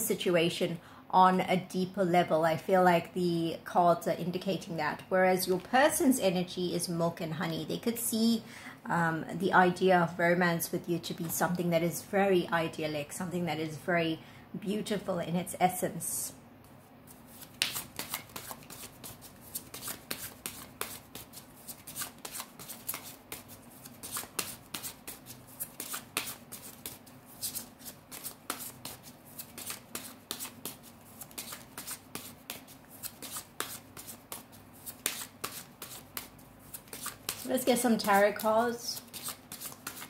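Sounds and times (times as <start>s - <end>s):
cards being shuffled by hand: 17.1s - 40.0s.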